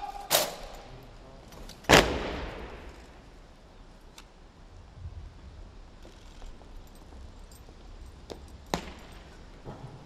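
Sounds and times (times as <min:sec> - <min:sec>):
cannon shots with rolling echo: 0:01.9 - 0:03.0.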